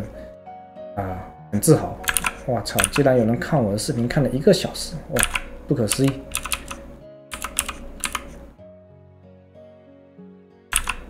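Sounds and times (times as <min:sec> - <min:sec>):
soft background music: 0:00.0 - 0:11.0
computer keyboard keys clicking: 0:02.0 - 0:03.4, 0:05.2 - 0:08.4, 0:10.7 - 0:11.0.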